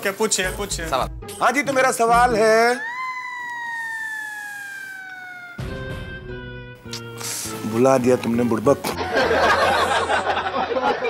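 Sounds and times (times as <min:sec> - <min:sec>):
high-pitched wailing tone: 0:02.6 - 0:06.2.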